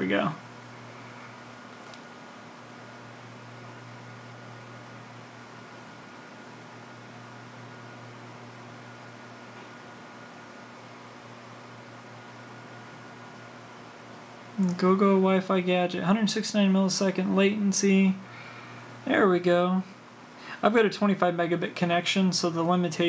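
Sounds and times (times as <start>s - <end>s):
steady background hiss: 0.0s - 23.0s.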